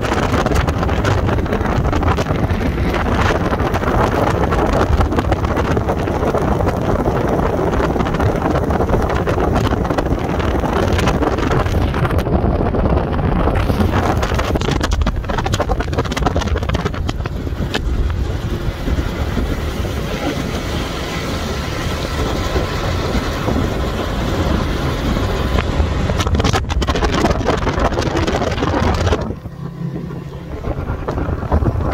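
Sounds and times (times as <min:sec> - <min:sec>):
outboard motor at speed: 0:00.0 - 0:31.9
wind buffeting microphone: 0:00.0 - 0:31.9.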